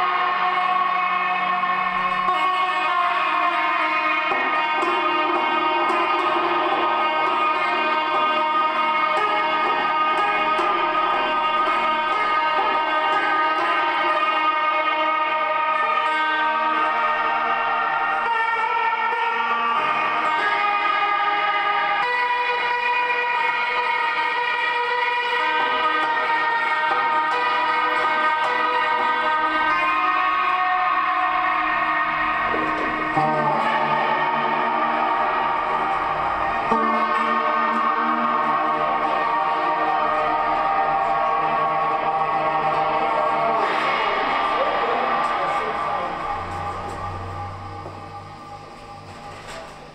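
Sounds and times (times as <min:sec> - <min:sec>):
lap steel guitar drone: 0:00.0 - 0:49.9.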